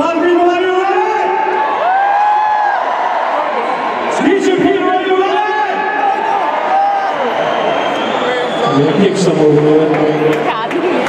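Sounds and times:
man talking: 0.0s - 1.5s, 4.1s - 6.4s, 8.3s - 10.4s
crowd chatter: 2.9s - 11.0s.

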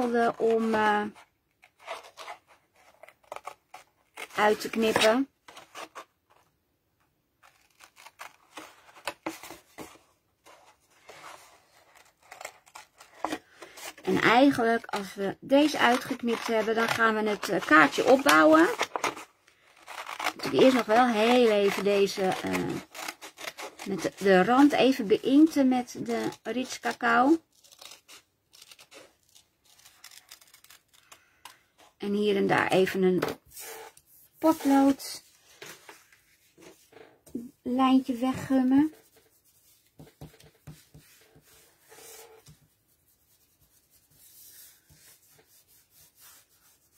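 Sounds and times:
scissors snipping paper: 14.6s - 25.6s, 26.2s - 31.2s.

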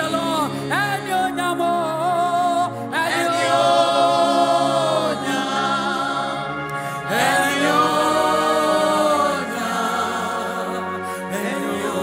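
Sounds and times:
women singing gospel song: 3.0s - 12.0s.

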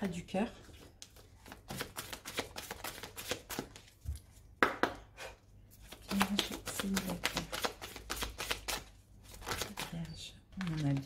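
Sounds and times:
cards shuffled by hand: 1.0s - 4.3s, 5.8s - 11.0s.

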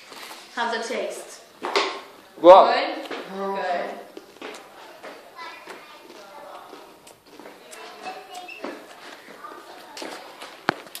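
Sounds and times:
faint chatter of people: 0.0s - 11.0s.

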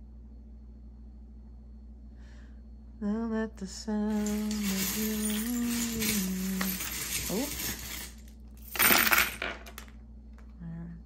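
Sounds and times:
metal charms clattering on table: 4.1s - 9.9s.

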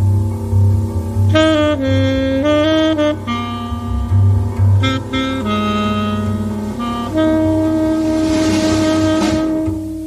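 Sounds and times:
bass and piano: 0.0s - 10.0s
cymbal swell: 0.0s - 10.0s
tenor saxophone long note: 1.2s - 10.0s.

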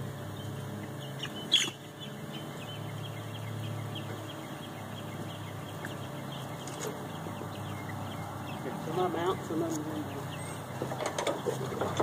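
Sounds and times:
chick squawking: 1.2s - 1.8s.

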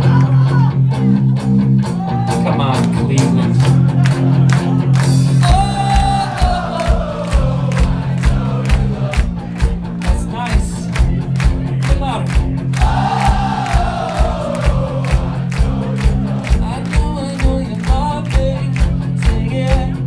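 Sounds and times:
live rock band playing: 0.0s - 20.0s
singer and crowd singing: 5.4s - 9.2s, 12.8s - 16.7s
kick-drum beat: 5.4s - 20.0s.

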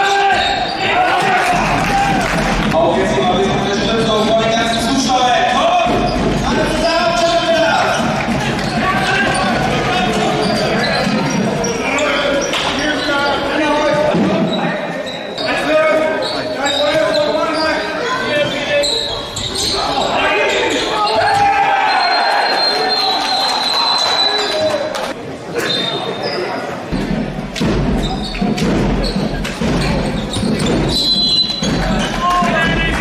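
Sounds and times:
players and spectators shouting: 0.0s - 14.0s, 15.2s - 25.2s
shoes squeaking: 3.4s - 21.4s, 28.0s - 32.8s.

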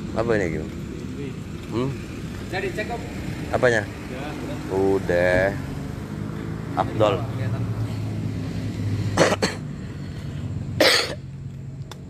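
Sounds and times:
car engine idling: 0.0s - 12.0s
person coughing: 9.2s - 9.6s, 10.8s - 11.2s.

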